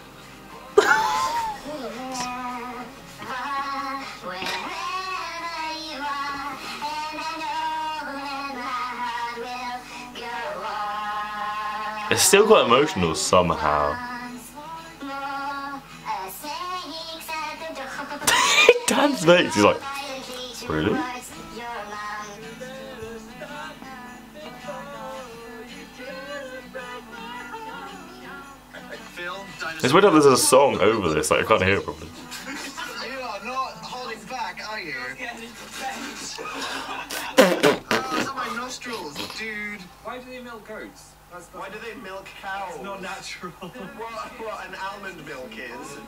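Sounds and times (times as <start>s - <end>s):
song with sung vocals: 0.0s - 40.0s, 42.2s - 46.0s
two men singing: 10.2s - 15.6s, 17.8s - 34.0s
people talking: 28.9s - 32.2s, 37.6s - 46.0s.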